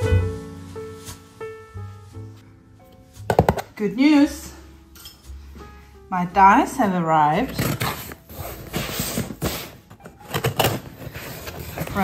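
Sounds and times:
soft piano music: 0.0s - 12.0s.

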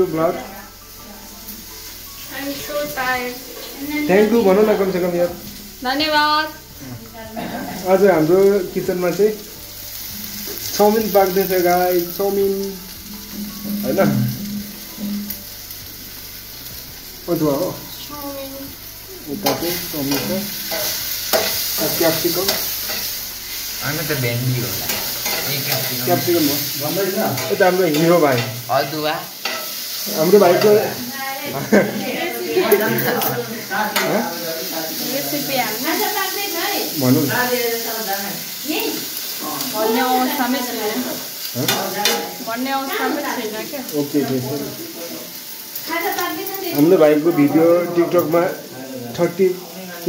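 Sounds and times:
vegetables sizzling in a wok: 0.0s - 50.0s
metal spatula scraping a pan: 19.3s - 28.7s, 29.4s - 31.0s.

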